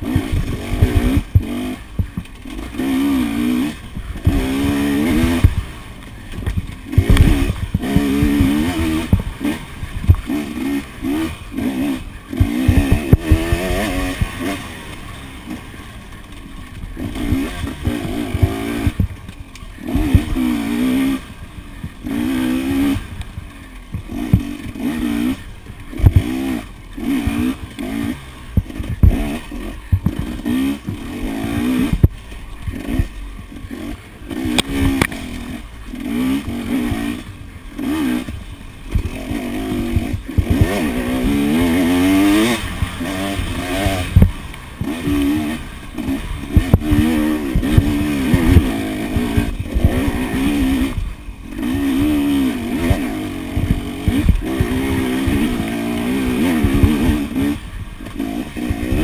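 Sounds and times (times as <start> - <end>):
dirt bike engine revving: 0.0 - 59.0
knocks and clatter of bike: 0.0 - 59.0.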